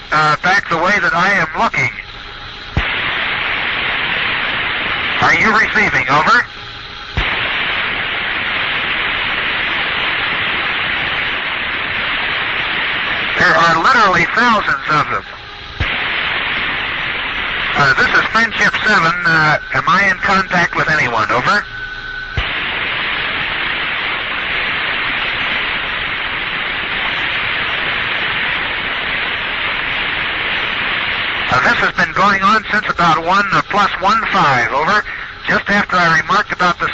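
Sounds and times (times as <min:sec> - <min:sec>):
radio static hissing: 0:00.0 - 0:36.9
steady tone: 0:00.0 - 0:36.9.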